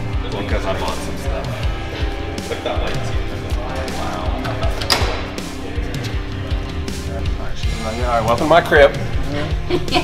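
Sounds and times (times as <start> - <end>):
music with steady beat: 0.0 - 10.0.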